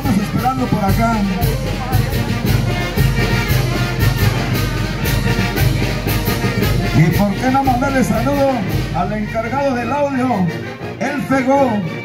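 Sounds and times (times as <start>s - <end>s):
cymbal and drum beat: 0.0s - 9.0s
brass band playing dance tune: 0.0s - 12.0s.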